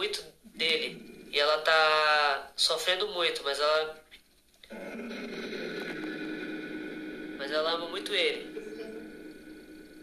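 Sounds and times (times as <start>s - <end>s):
faint hum: 0.0s - 10.0s
static hiss: 4.6s - 10.0s.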